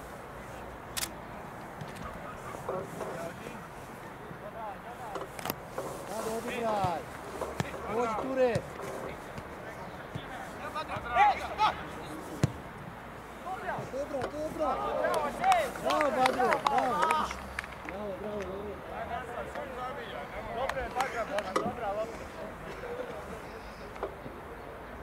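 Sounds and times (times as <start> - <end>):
footballers shouting: 6.1 - 18.2
ball being kicked: 6.8 - 7.8.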